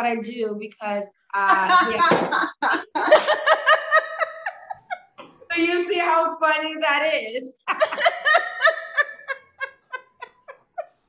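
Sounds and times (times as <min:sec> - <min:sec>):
woman laughing hard: 0:01.5 - 0:05.2, 0:07.7 - 0:11.0.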